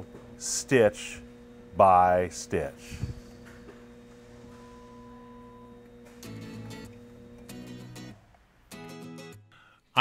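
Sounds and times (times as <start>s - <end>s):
low electrical hum: 0.0s - 8.8s.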